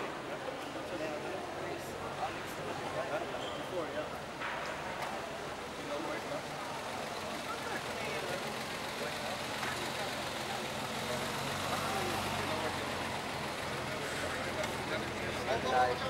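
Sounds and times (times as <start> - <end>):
crowd chatter: 0.0 - 16.0
car engine idling: 5.5 - 16.0.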